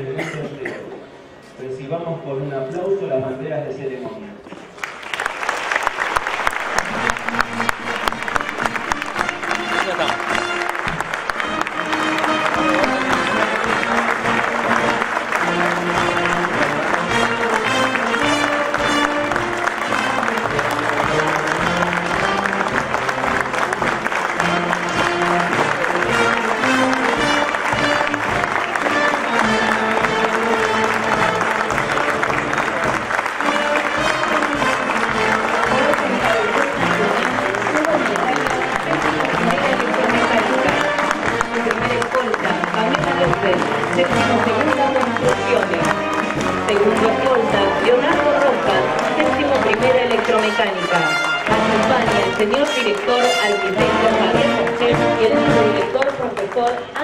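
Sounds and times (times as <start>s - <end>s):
crowd applauding: 4.5s - 57.0s
brass march music: 5.7s - 57.0s.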